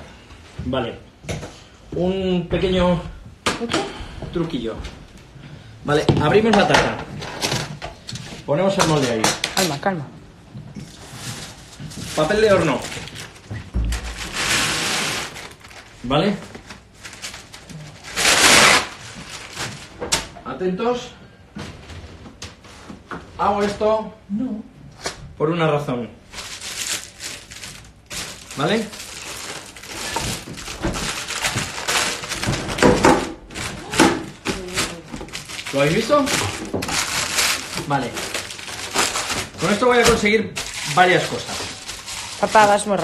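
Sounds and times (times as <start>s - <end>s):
paper rustling and tearing: 10.8s - 20.0s, 26.3s - 43.0s.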